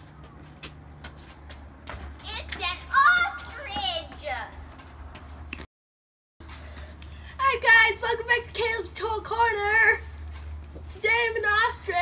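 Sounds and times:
children's high-pitched calls: 0:02.3 - 0:04.6.

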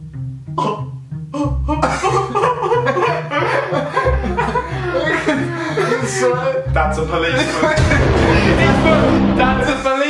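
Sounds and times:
young men laughing hard: 0:01.7 - 0:06.6.

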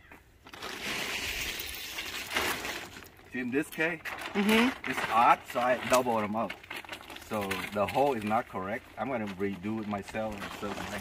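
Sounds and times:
plastic tarp rustling: 0:00.4 - 0:11.0.

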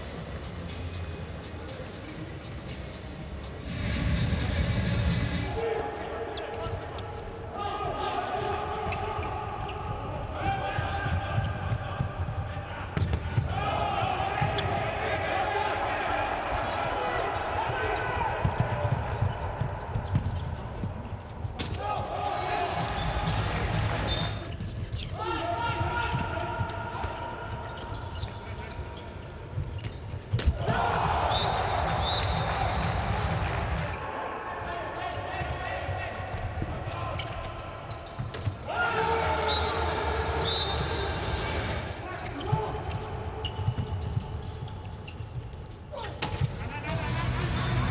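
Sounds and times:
players shouting: 0:05.4 - 0:19.8, 0:21.6 - 0:28.3, 0:30.4 - 0:38.0, 0:38.6 - 0:43.6
ball bouncing on court floor: 0:10.8 - 0:13.6, 0:18.4 - 0:21.8, 0:29.6 - 0:33.9, 0:35.0 - 0:38.7.

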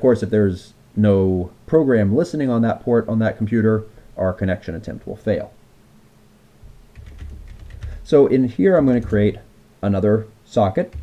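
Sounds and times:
typing on computer keyboard: 0:06.9 - 0:08.1.

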